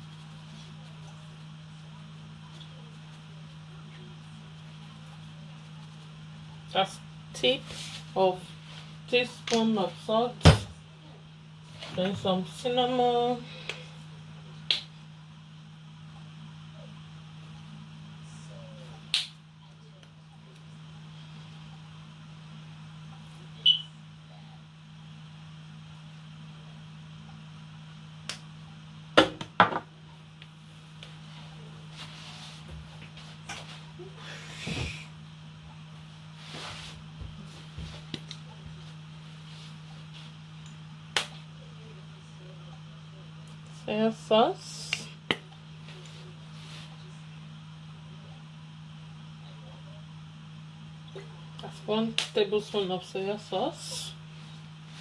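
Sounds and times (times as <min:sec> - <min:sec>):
steady low hum: 0:00.0 - 0:55.0
soft rustles: 0:31.1 - 0:33.9.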